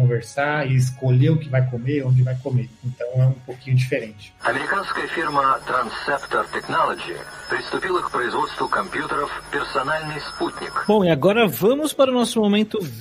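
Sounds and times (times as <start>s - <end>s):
faint high whine: 4.4s - 11.0s
radio-like speech: 4.4s - 11.0s.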